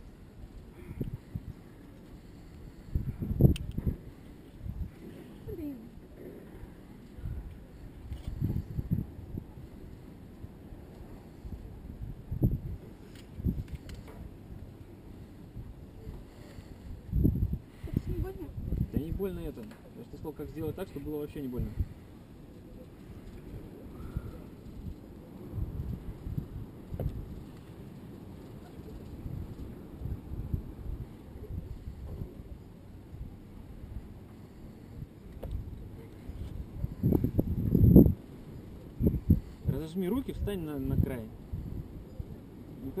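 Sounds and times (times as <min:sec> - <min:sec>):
wind buffeting microphone: 0:00.0 - 0:43.0
click: 0:03.5 - 0:03.8.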